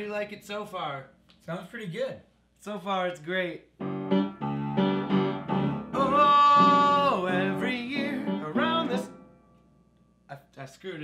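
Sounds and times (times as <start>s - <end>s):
upright piano chords: 3.8s - 9.6s
person singing: 5.9s - 9.1s.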